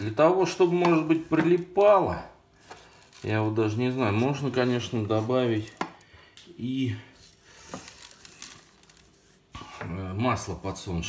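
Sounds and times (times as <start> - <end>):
hand rubbing raw poultry skin: 2.6 - 5.8.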